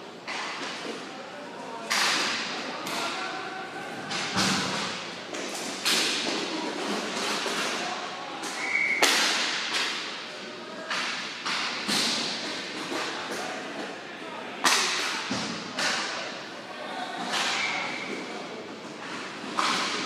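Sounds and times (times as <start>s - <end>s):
hockey sticks clacking puck: 0.2s - 1.1s, 1.8s - 3.2s, 4.0s - 14.0s, 14.6s - 16.3s, 17.2s - 20.0s.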